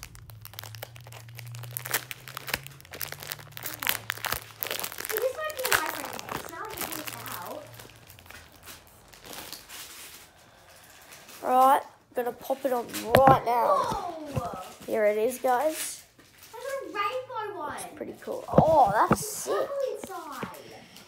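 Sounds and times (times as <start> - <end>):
packaging crinkling: 0.0 - 11.8, 14.1 - 16.9
person speaking: 3.6 - 7.8, 11.4 - 15.7, 16.7 - 20.7.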